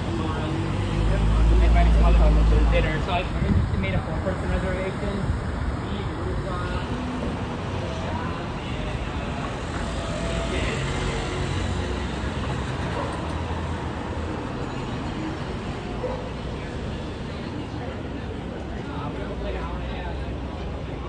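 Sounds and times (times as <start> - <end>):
cars passing on road: 0.0 - 21.0.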